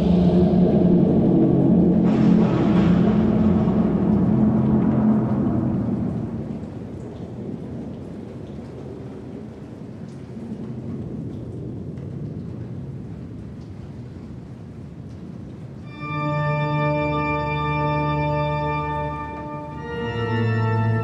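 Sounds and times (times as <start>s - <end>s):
droning tones: 0.0s - 7.4s, 15.9s - 21.0s
low thunder-like rumble: 0.0s - 15.8s
rain hiss: 0.0s - 21.0s
faint drips: 5.1s - 15.9s.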